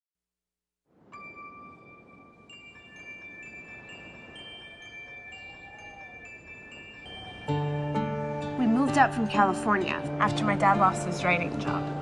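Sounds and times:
chime-like ringing notes: 1.1s - 12.0s.

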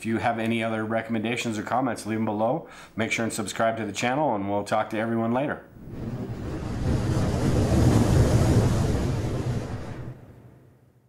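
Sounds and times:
rumbling whoosh: 5.7s - 10.8s.

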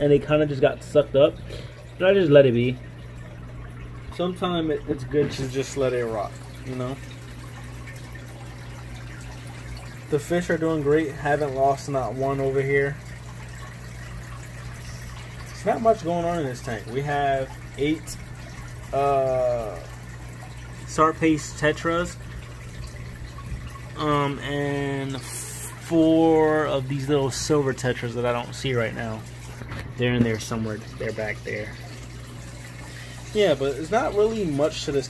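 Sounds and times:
aquarium water bubbling: 0.0s - 35.0s
steady low hum: 0.0s - 35.0s.

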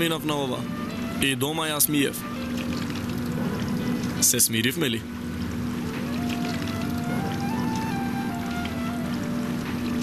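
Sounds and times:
water running from a tap: 2.2s - 10.0s.

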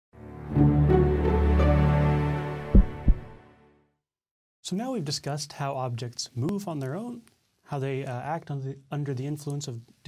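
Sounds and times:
deep thumps: 2.7s - 3.4s.

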